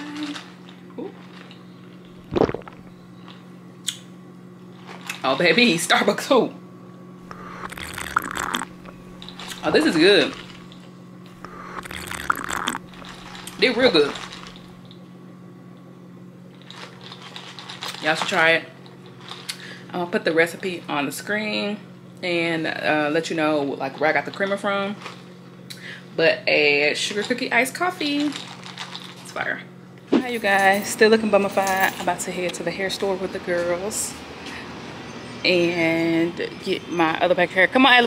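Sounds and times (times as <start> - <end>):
low hum: 6.6 - 17.0
sharp slurp: 7.3 - 8.7, 11.4 - 12.8
sipping through a straw: 7.3 - 8.7, 11.4 - 13.6
ice rattling in plastic cup: 11.8 - 14.7, 16.6 - 18.6, 28.0 - 29.3.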